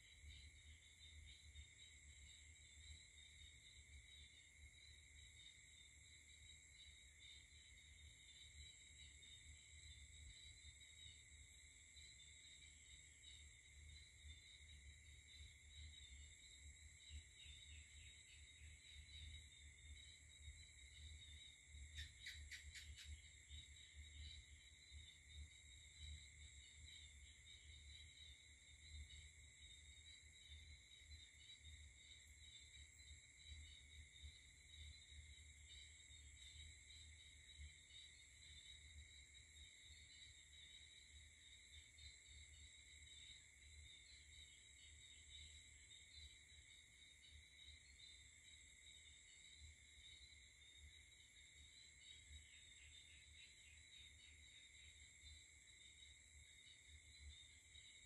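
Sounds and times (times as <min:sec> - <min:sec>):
night insects chirping: 0:00.0 - 0:58.0.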